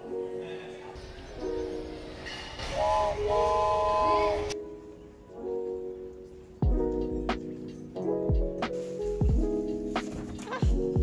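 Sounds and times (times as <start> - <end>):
toy train whistle tooting: 2.6 - 4.6.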